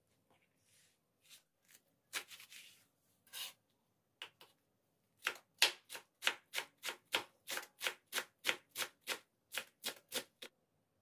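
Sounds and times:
knife chopping cabbage on board: 5.2s - 10.5s.

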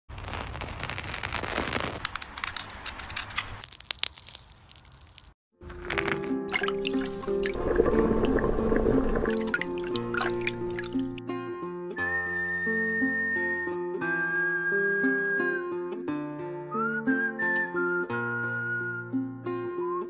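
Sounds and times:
dry cocoon crackling and rustling: 0.1s - 7.1s
small splashes: 5.7s - 11.2s.

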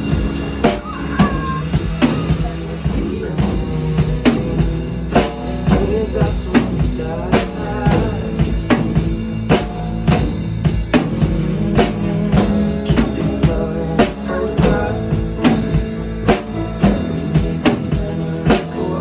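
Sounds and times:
acoustic drum kit playing: 0.0s - 19.0s
instrumental pop backing: 0.0s - 19.0s.

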